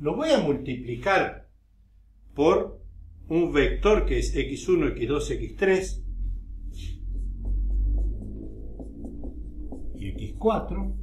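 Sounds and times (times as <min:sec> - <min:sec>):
low room hum: 0:00.0 - 0:11.0
marker writing on whiteboard: 0:06.7 - 0:11.0.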